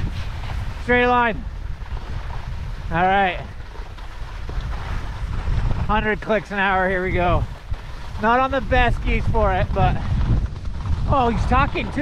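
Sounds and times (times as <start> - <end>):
skis hissing over snow: 0.0 - 10.3
wind buffeting microphone: 0.0 - 12.0.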